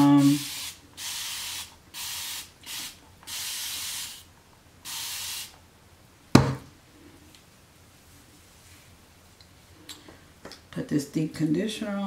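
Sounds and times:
spray bottle hissing bursts: 0.2 - 5.6
sharp thump: 6.3 - 6.7.

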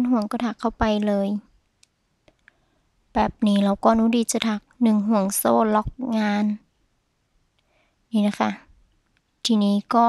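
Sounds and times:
person speaking: 0.0 - 1.4, 3.2 - 6.6, 8.2 - 8.6, 9.5 - 10.0.

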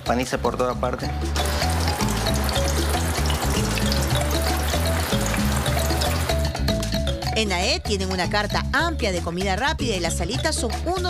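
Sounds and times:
background music: 0.0 - 11.0
oil sizzling and crackling: 1.3 - 6.9.

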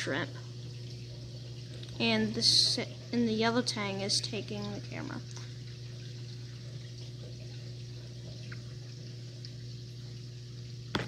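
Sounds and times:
pump hum: 0.0 - 11.0
water trickling: 0.0 - 11.0.

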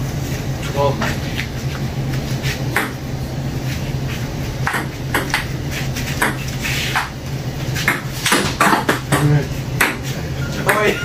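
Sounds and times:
ping-pong ball hitting paddles: 2.7 - 3.0, 4.6 - 5.5, 6.2 - 7.1, 7.8 - 11.0.

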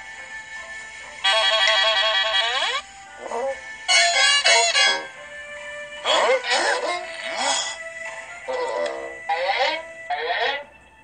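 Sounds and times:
cartoon warbling tone: 3.4 - 5.2, 6.1 - 7.8, 8.5 - 10.7.

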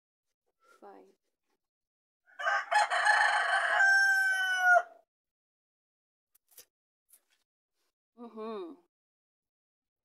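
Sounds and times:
rooster crowing: 2.3 - 5.0.

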